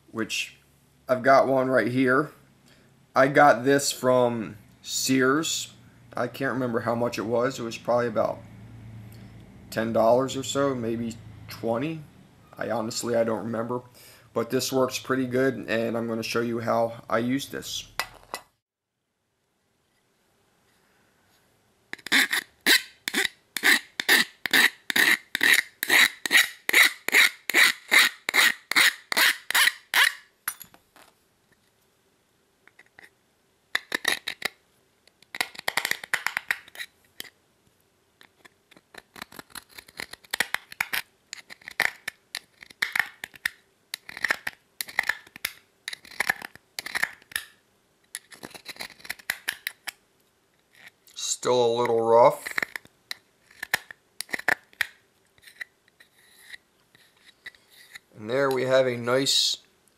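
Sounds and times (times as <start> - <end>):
deburring tool scraping aluminum: 55.4 - 58.1.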